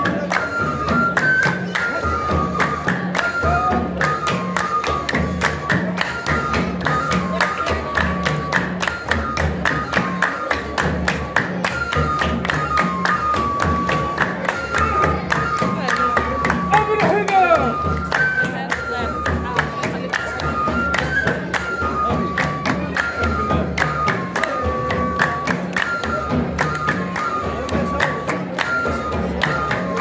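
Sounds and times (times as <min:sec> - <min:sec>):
hand claps in fast rhythm: 0:00.0 - 0:30.0.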